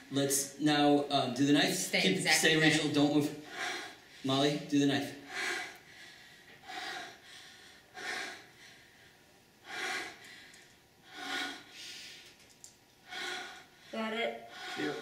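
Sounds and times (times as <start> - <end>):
person breathing heavily: 3.4 - 4.4, 5.2 - 12.4, 13.0 - 15.0.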